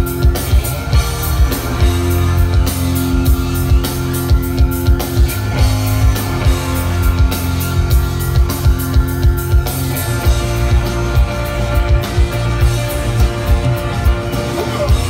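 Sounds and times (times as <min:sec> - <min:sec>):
electric guitars: 0:00.0 - 0:15.0
keyboard: 0:00.0 - 0:15.0
steady drum beat: 0:00.0 - 0:15.0.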